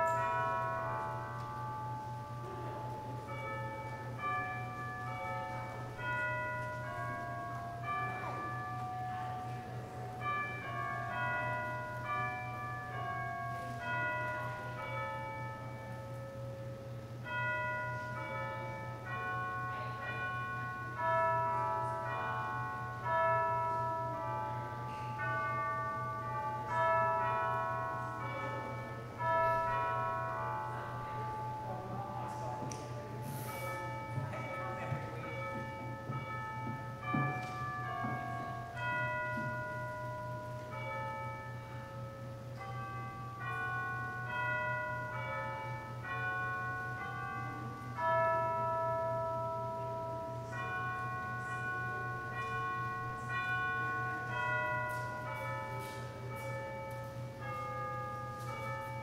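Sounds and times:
bell tone music: 0.0 - 59.0.

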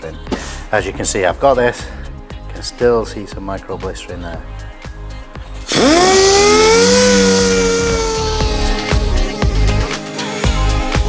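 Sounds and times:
orbital sander whining: 5.7 - 10.0.

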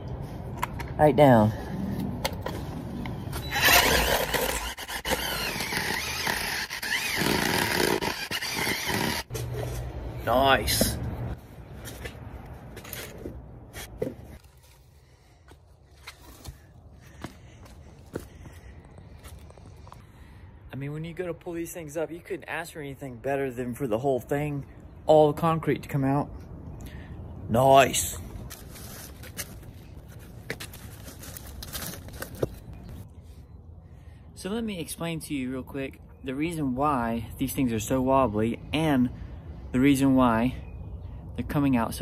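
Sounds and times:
footsteps on brick steps: 15.4 - 20.0
rustling movement: 28.3 - 33.4.

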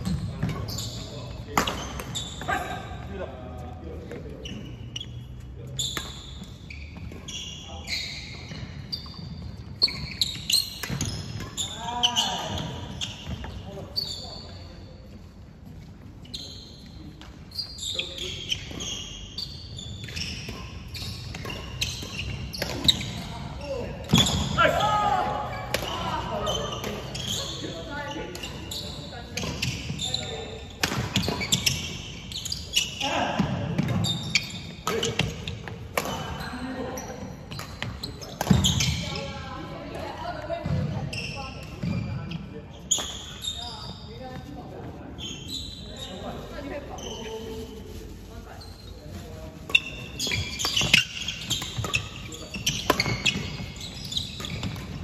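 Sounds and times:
shoes squeaking on wooden floor: 0.0 - 15.0, 15.6 - 55.0
rackets hitting shuttlecock: 1.5 - 2.2, 10.6 - 11.6, 30.8 - 31.9, 34.8 - 36.4, 37.5 - 39.2, 50.2 - 55.0
players' voices: 22.3 - 32.2.

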